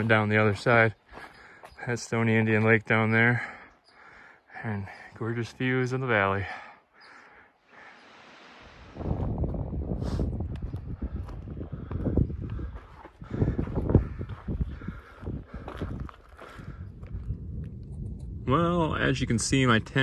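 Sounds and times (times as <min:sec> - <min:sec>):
footsteps on gravelly trail: 0:00.0 - 0:02.8, 0:10.6 - 0:17.4
low rumble: 0:08.0 - 0:16.1.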